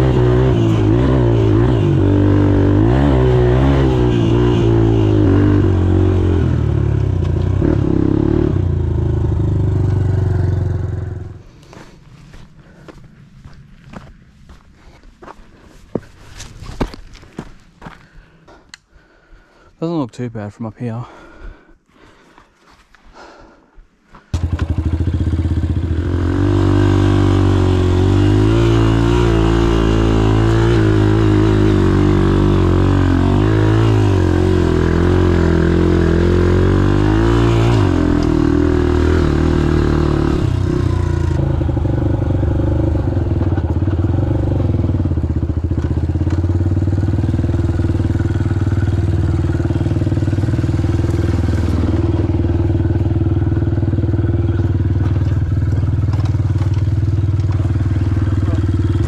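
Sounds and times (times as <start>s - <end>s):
dirt bike engine revving: 0.0s - 11.4s, 24.3s - 59.0s.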